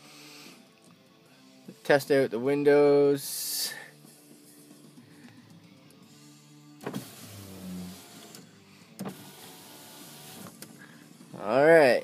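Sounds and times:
electric window motor running: 6.8s - 10.7s.

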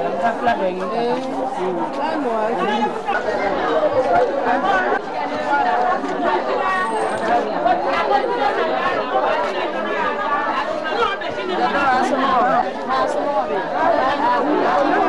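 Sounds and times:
many voices chattering: 0.0s - 15.0s.

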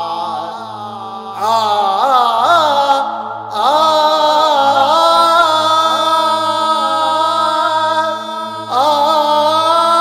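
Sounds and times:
person chant-like singing: 0.0s - 10.0s
steady low drone: 0.0s - 10.0s.

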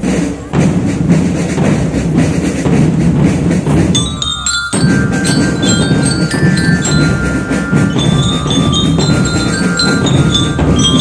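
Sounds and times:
marching drums beating: 0.0s - 11.0s.

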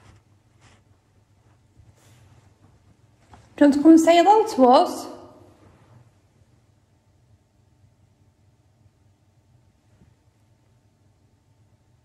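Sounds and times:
person speaking with echo: 3.6s - 5.6s.

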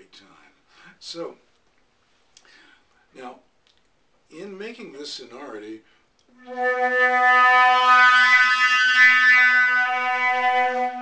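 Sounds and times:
flute long low note: 6.3s - 11.0s
player singing into flute: 6.4s - 11.0s.

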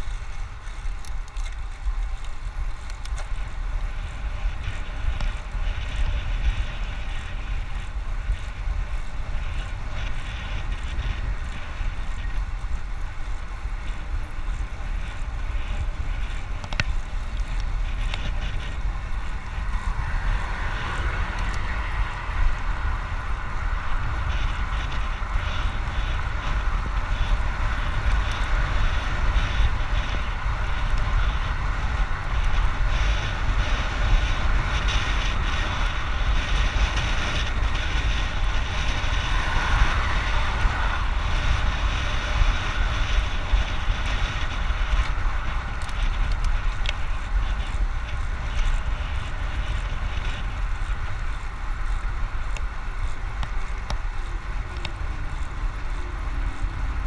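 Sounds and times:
wind buffeting microphone: 0.0s - 57.0s
tyres hissing on asphalt: 2.0s - 57.0s.

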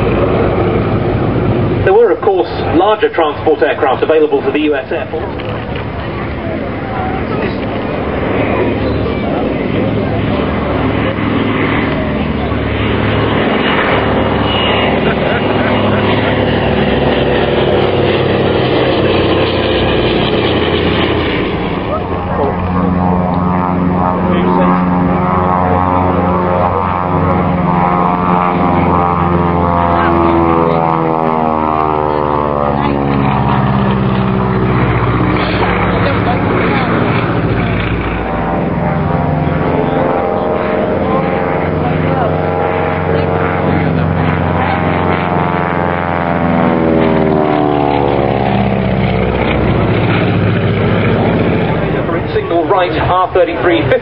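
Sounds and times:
propeller aircraft flying low past: 0.0s - 54.0s.

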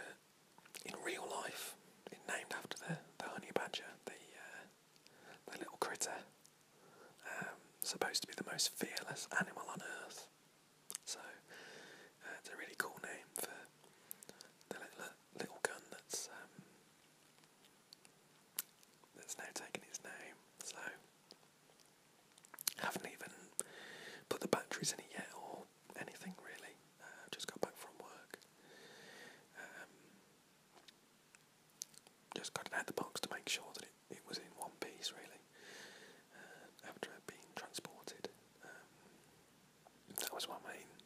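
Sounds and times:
man whispering: 0.0s - 0.2s, 0.8s - 6.4s, 7.1s - 10.3s, 10.9s - 11.5s, 12.2s - 16.7s, 19.1s - 21.1s, 22.6s - 28.5s, 29.5s - 30.1s, 32.3s - 35.5s, 36.3s - 39.0s, 40.0s - 41.0s.

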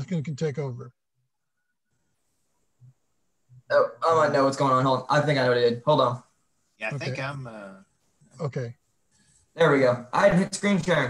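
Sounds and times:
man speaking: 0.0s - 1.0s, 3.7s - 8.8s.

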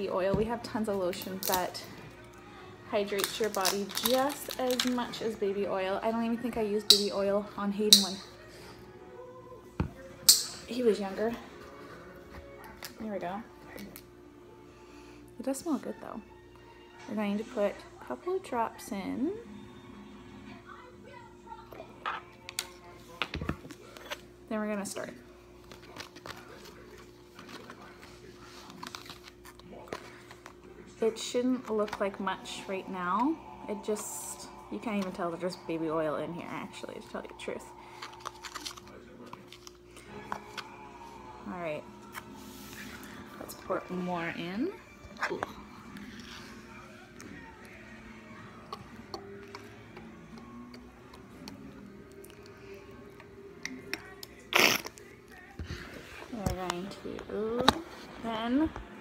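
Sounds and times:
faint background music: 0.0s - 59.0s
faint steady hum: 0.0s - 59.0s.

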